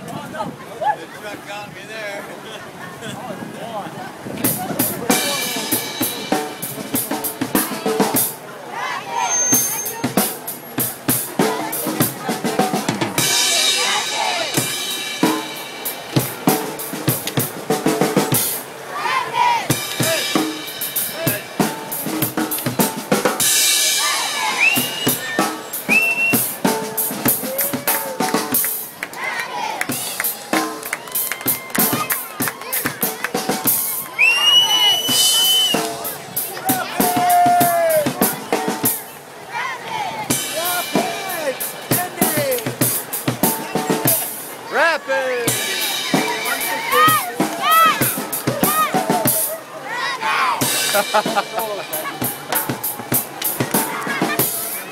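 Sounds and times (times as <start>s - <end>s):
drum kit played hard: 4.4s - 8.5s, 9.3s - 18.8s, 19.7s - 29.0s, 29.9s - 34.1s, 35.0s - 39.1s, 40.3s - 49.6s, 50.6s - 54.9s
children chanting and shouting: 4.6s - 17.0s, 18.1s - 22.4s, 23.4s - 54.9s.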